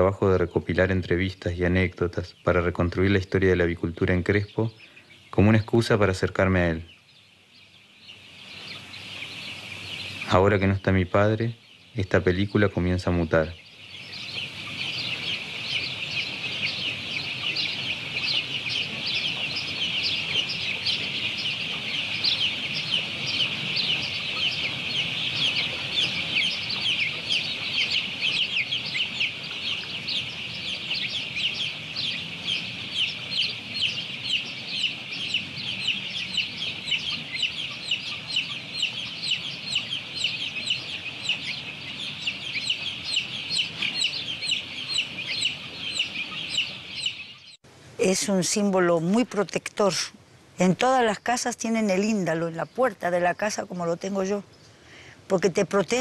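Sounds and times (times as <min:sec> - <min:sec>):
chicks peeping: 0:00.0 - 0:56.0.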